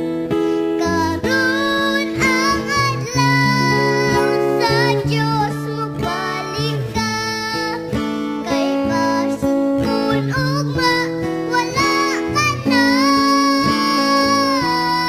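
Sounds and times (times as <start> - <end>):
acoustic guitar: 0.0 - 15.0.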